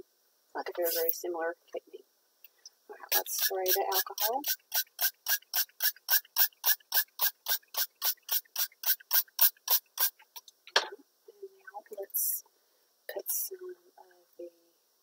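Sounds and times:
spray bottle spritzing: 0.8 - 1.1, 3.1 - 10.4.

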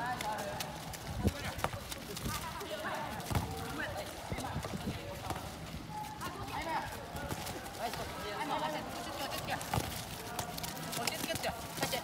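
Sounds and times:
light knocks of feet and ball: 0.0 - 12.0
football kicked dull thuds: 3.0 - 5.6, 9.4 - 11.5.

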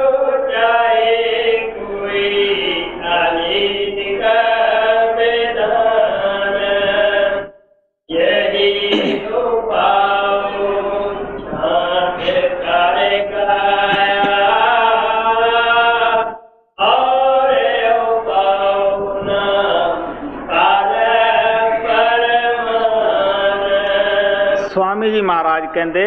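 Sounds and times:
person singing devotional hymn: 0.0 - 25.2.

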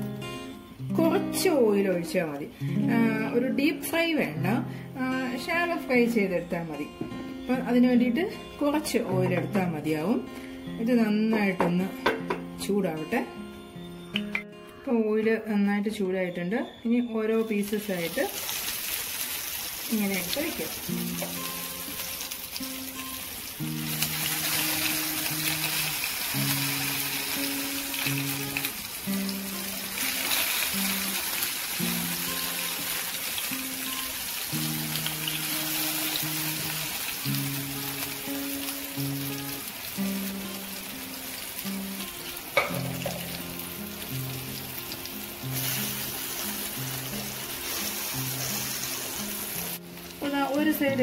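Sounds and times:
background music melody: 0.0 - 51.0
food sizzling in oil: 17.0 - 51.0.

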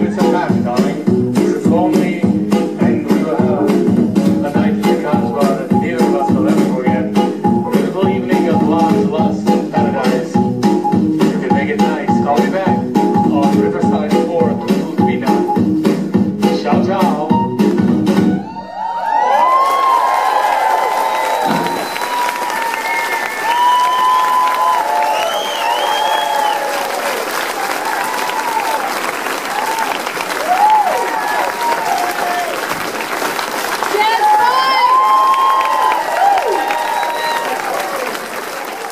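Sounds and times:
swing music: 0.0 - 18.6, 21.4 - 32.4
cheering and whoops: 18.4 - 32.6, 34.0 - 38.4
audience applause: 18.6 - 38.9.

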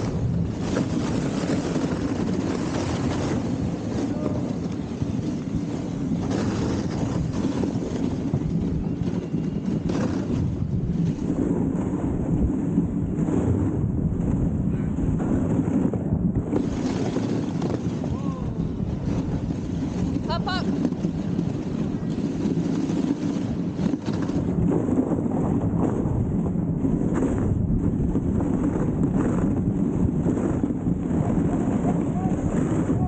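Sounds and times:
sled runners rumbling on snow: 0.0 - 33.0
wind buffeting microphone: 0.0 - 33.0.

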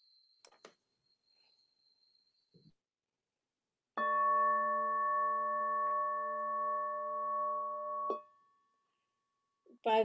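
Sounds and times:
singing bowl ringing: 4.0 - 8.8.

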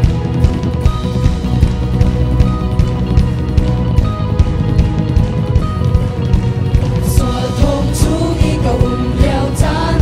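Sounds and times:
bass guitar: 0.0 - 10.0
electric guitar: 0.0 - 10.0
steady drum beat: 0.0 - 10.0.

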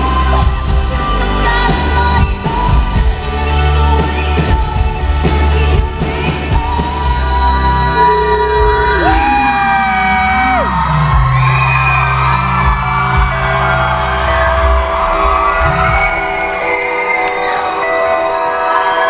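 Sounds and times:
deep bass: 0.0 - 16.5
crowd cheering and whooping: 7.9 - 19.0.

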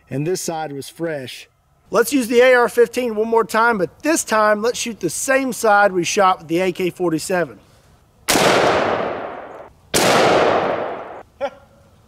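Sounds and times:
rifle shots with echo: 8.3 - 11.2.

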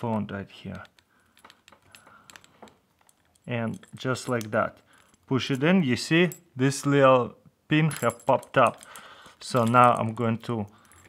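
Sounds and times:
metallic clicks and scraping in lock: 0.7 - 5.6.

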